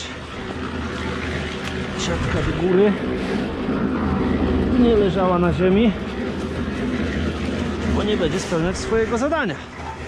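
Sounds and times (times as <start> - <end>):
low motor drone: 0.0 - 10.0.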